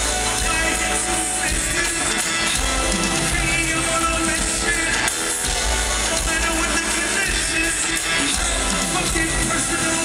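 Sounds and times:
live hip-hop band with vocals: 0.0 - 10.0.

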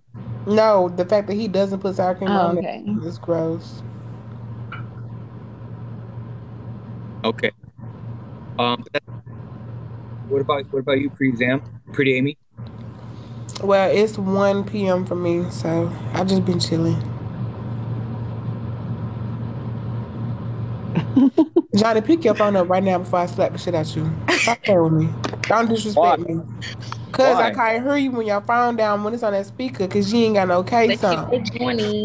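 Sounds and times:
low hum: 0.0 - 32.0.

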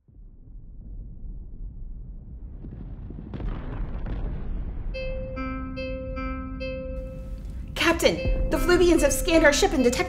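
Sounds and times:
two-pitch electronic beeping: 5.0 - 10.0.

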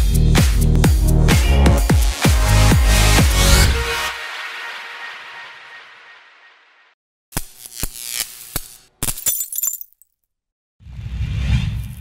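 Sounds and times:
glass cracking: 8.6 - 10.1
glass shattering clinks: 9.1 - 10.1.

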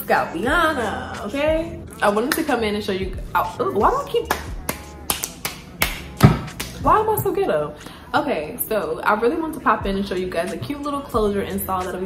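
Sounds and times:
hands tapping and slapping: 4.3 - 6.8.

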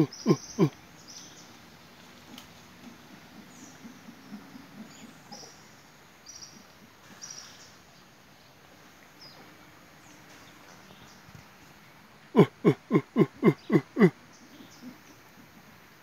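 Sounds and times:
monkey grunting: 0.0 - 0.8, 12.3 - 14.2
bird chirping: 0.0 - 1.6, 12.4 - 15.2.

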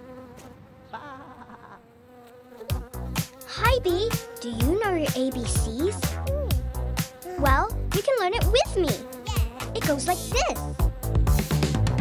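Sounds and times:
cartoon bee buzzing: 0.0 - 12.0
music with a beat: 5.6 - 7.2, 10.8 - 12.0.

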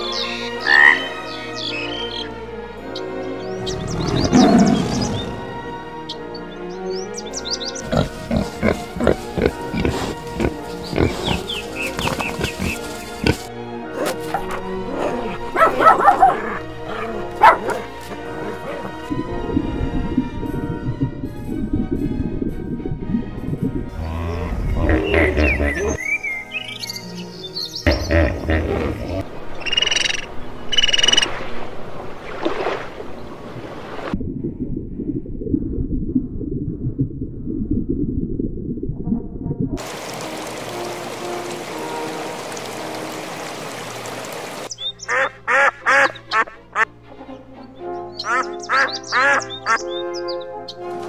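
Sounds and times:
background music: 0.0 - 30.8, 39.8 - 51.0
duck quacking: 45.1 - 46.8, 48.2 - 50.0.

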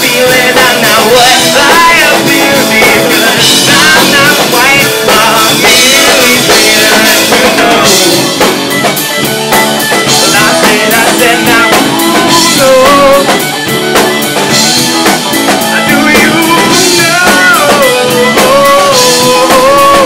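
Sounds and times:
drum kit beat: 0.0 - 20.0
electric guitars: 0.0 - 20.0.

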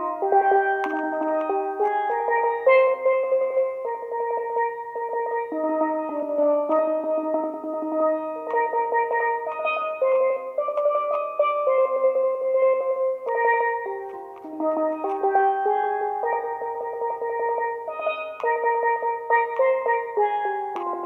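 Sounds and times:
steelpan melody: 0.0 - 21.0.

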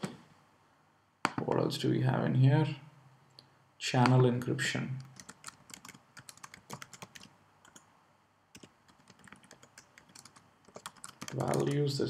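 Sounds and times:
typing on computer keyboard: 5.0 - 7.9, 8.6 - 12.0.

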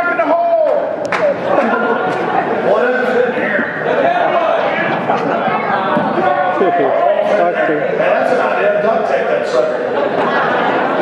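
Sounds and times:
indistinct talking in a large hall: 0.0 - 11.0.

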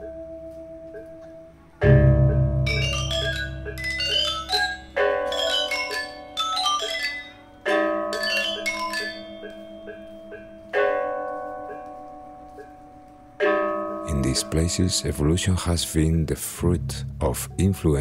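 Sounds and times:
loud ringing unison strikes: 1.8 - 5.3, 14.2 - 18.0
gamelan metallophones: 1.8 - 10.6.

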